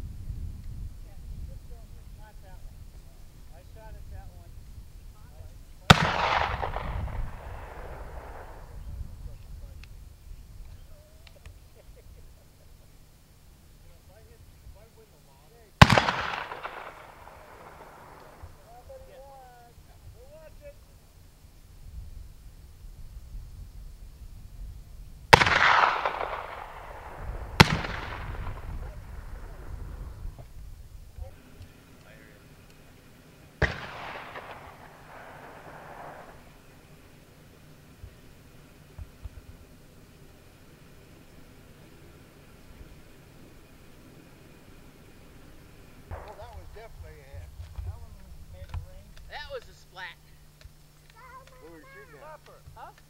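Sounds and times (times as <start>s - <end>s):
rifle shot: 5.9s - 9.0s, 15.8s - 18.8s, 25.3s - 30.4s, 33.6s - 37.2s, 46.1s - 47.0s.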